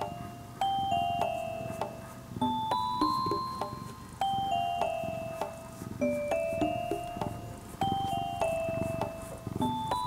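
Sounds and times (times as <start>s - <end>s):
gentle chiming mallet tune: 0.0s - 10.0s.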